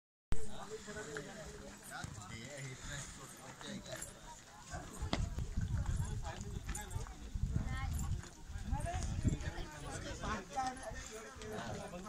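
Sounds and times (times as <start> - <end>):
people talking while walking: 0.3 - 12.0.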